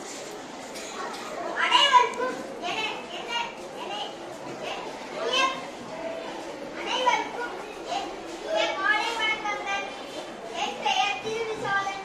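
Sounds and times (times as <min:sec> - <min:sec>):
children's voices in a hall: 0:00.0 - 0:12.0
child speaking into a microphone: 0:00.8 - 0:12.0.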